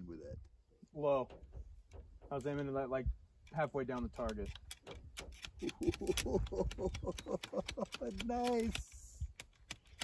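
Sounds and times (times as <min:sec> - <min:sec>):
rapid irregular clicks: 0:03.4 - 0:10.0.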